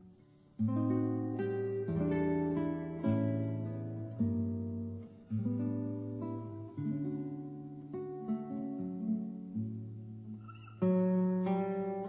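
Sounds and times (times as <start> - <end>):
acoustic guitar ballad: 0.0 - 12.0.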